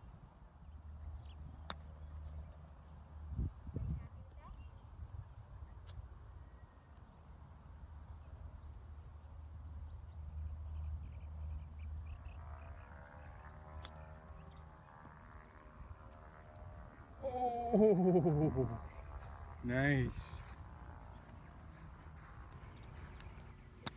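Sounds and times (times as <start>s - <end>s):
wind on microphone: 3.3s - 4.2s.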